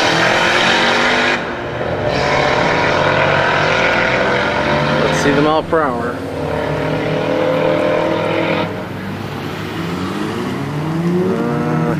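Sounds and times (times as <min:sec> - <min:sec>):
another engine revving up: 0:00.0 - 0:11.9
racing car engine revving: 0:00.0 - 0:11.9.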